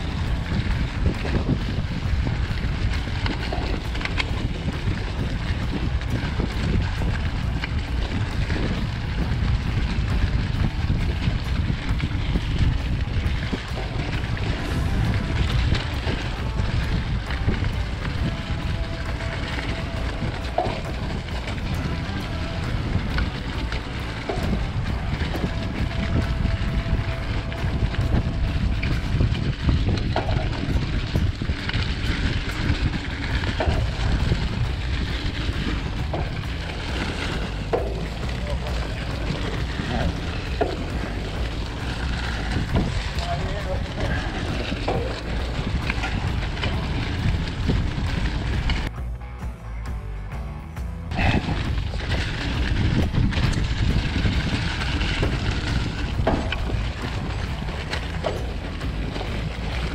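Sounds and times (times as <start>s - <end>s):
tyres rolling over dry leaves: 0.0s - 49.0s, 51.0s - 59.9s
wind rushing over microphone: 0.0s - 49.0s, 51.0s - 59.9s
bike clicks and rattles: 0.0s - 59.9s.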